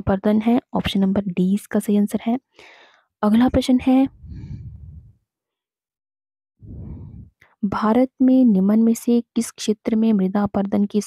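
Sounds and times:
person breathing out: 4.2s - 5.2s, 6.6s - 7.3s.

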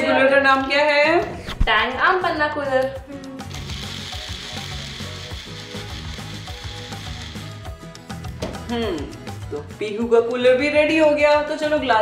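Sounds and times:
blender running: 3.4s - 7.7s.

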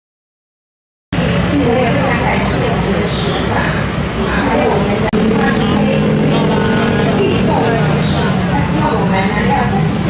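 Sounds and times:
crowd voices: 2.4s - 10.0s
traffic din: 3.8s - 10.0s
car passing: 5.2s - 8.8s.

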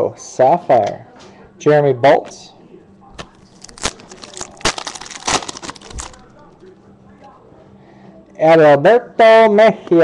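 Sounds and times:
foil wrapper tearing and crinkling: 3.2s - 6.3s.

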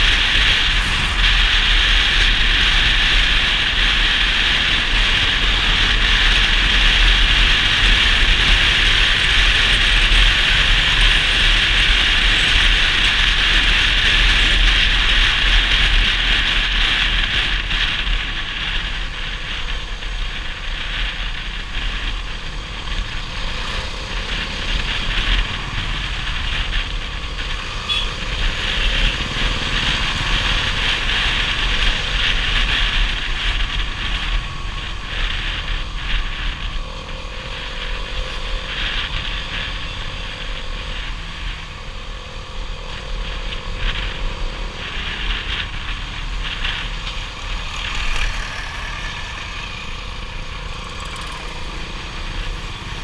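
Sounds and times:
wind rush: 0.0s - 14.3s, 14.9s - 53.0s
motorcycle engine rumble: 0.0s - 53.0s
road noise: 0.0s - 53.0s.

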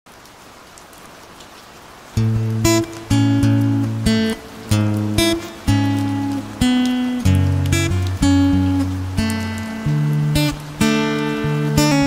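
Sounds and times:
steady rain hiss: 0.1s - 12.0s.

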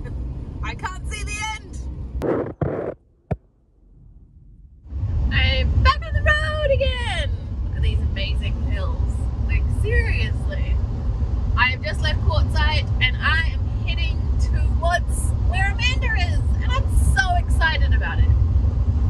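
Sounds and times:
engine and road rumble: 0.0s - 19.0s
woman speaking: 0.6s - 1.8s, 5.3s - 10.8s, 11.6s - 18.3s.

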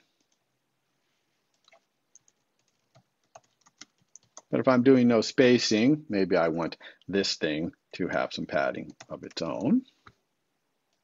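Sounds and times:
faint keyboard typing: 0.0s - 0.5s, 1.5s - 4.6s, 8.7s - 10.2s.

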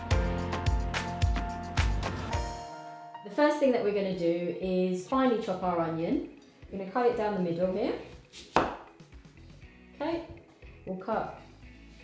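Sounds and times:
knife slicing through onion: 8.3s - 8.9s.

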